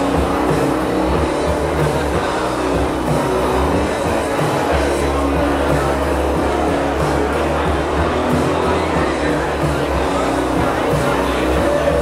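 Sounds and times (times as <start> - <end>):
live band with distorted guitar: 0.0 - 12.0.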